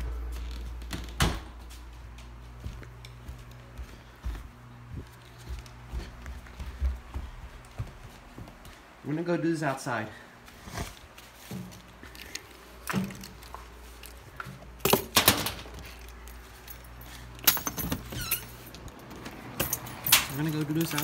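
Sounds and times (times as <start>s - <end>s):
door opening: 0.0s - 1.6s, 17.5s - 21.0s
handling clicks and knocks: 11.6s - 21.0s
keys jangling: 14.8s - 21.0s.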